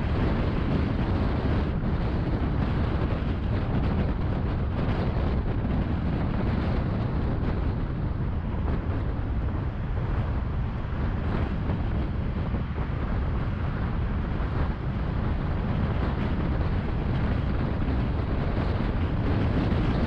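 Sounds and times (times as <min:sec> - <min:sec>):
tyres rumbling on road: 0:00.0 - 0:20.0
wind noise: 0:00.0 - 0:20.0.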